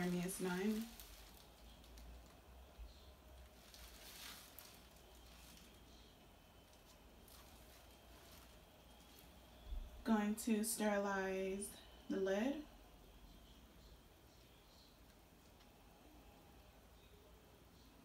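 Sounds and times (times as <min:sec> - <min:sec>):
soft rustles: 0:00.0 - 0:02.4, 0:03.4 - 0:09.6.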